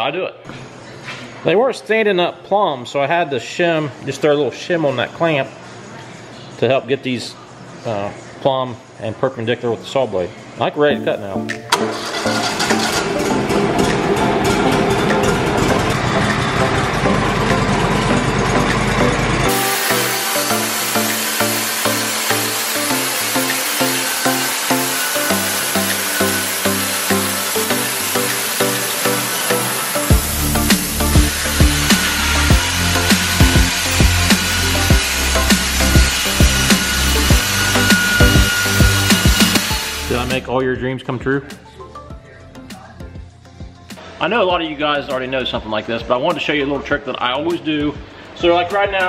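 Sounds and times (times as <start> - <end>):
background music with steady rhythm: 10.9 - 49.0
sawmill engine running: 11.7 - 40.4
heavy bass beat: 30.1 - 40.3.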